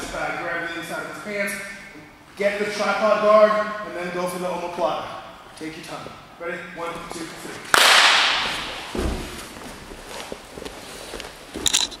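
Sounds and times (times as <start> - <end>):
sharp slaps on mats: 7.7 - 9.2
low thud on mats: 8.4 - 9.4.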